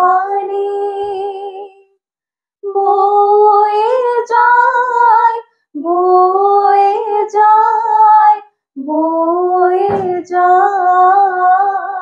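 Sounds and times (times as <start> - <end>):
girls singing in unison: 2.7 - 12.0.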